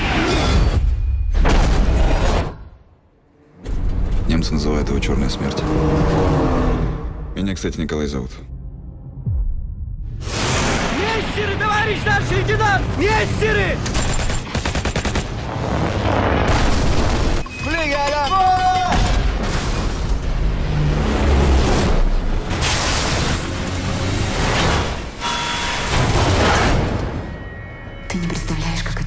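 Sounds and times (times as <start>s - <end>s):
explosion rushing tail: 9.3s - 11.3s
machine-gun fire: 13.9s - 15.5s.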